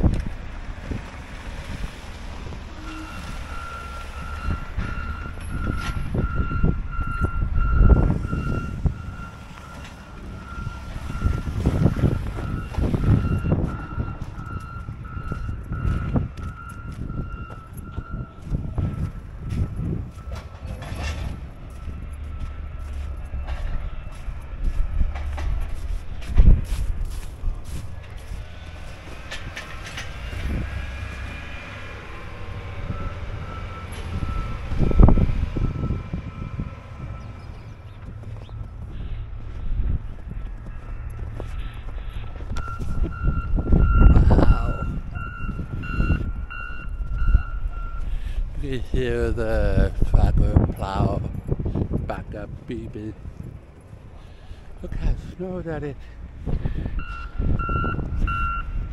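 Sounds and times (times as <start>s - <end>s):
wind buffeting microphone: 0.0s - 58.9s
vehicle backup alarm beeping: 2.4s - 25.8s, 27.5s - 52.3s, 54.4s - 58.9s
footsteps crunching in snow: 21.7s - 29.6s, 38.1s - 43.1s.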